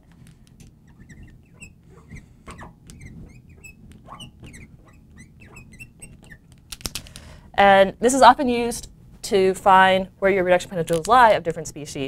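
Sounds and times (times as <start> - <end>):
marker squeaking on glass: 0.7 - 6.7.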